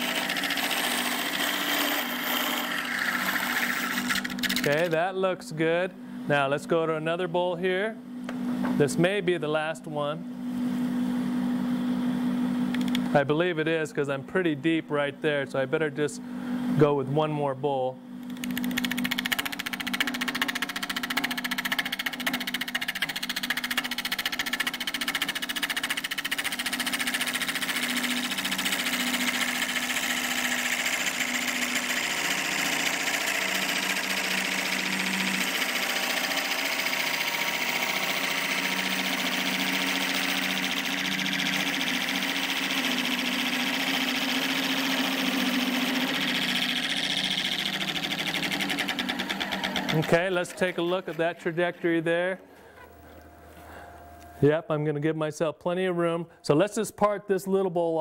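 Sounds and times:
lathe humming: 0:00.0 - 0:05.0, 0:18.3 - 0:54.4.

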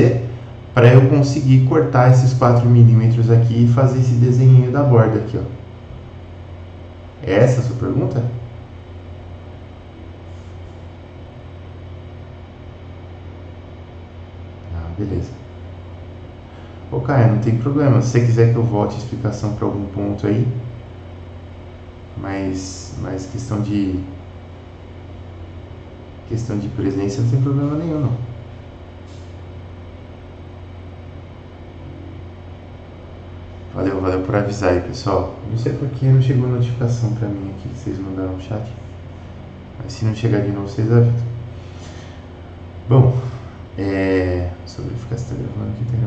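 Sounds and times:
low hum: 0:00.0 - 0:46.0.

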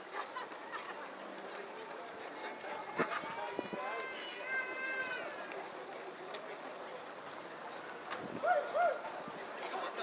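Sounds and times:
runners' footsteps on wet road: 0:00.0 - 0:10.0
spectators' voices: 0:00.0 - 0:10.0.

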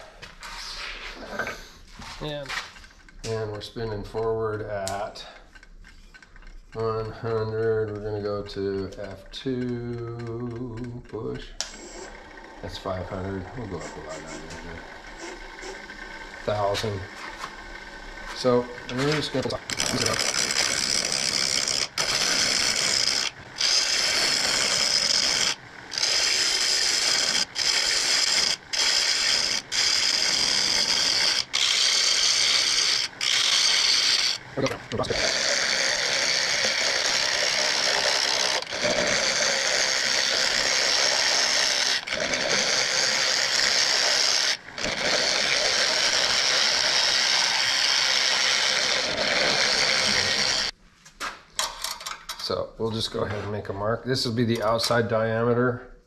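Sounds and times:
gouge scraping wood on lathe: 0:00.0 - 0:50.8.

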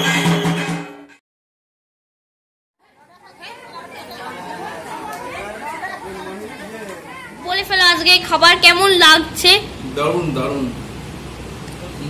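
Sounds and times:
people chattering: 0:02.8 - 0:10.8.

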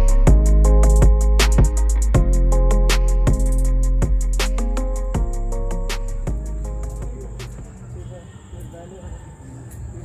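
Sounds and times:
distant people talking: 0:06.9 - 0:10.0.

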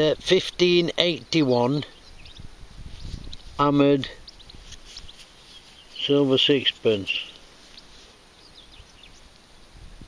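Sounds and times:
faint bird chirps: 0:01.7 - 0:09.4.

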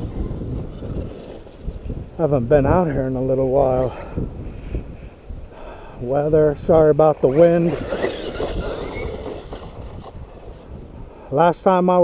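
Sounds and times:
tires running over dirt: 0:00.0 - 0:04.9, 0:06.0 - 0:11.1
wind on microphone: 0:00.0 - 0:12.0
electric motor whining: 0:07.2 - 0:10.7.

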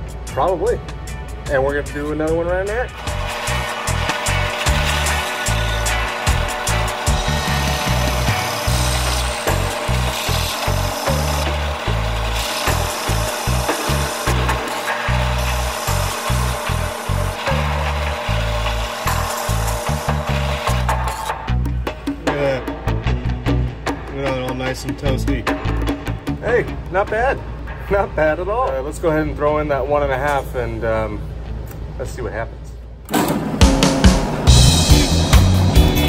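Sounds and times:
background music with steady beat: 0:00.0 - 0:30.4, 0:33.3 - 0:36.0
hole saw cutting sheet metal: 0:02.9 - 0:21.5.

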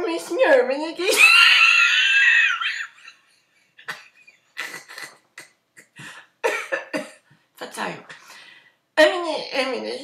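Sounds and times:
woman laughing in a high squeal: 0:01.2 - 0:03.2.

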